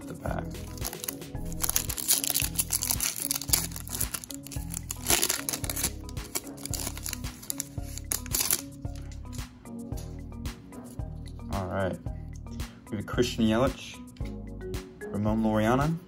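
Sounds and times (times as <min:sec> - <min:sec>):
foil wrapper tearing and crinkling: 0:00.6 - 0:08.8
music with steady bass beat: 0:07.1 - 0:12.8, 0:13.6 - 0:16.0.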